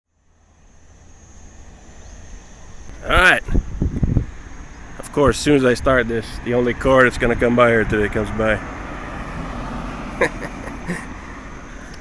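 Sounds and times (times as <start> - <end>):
car approaching on road: 0.1 - 12.0.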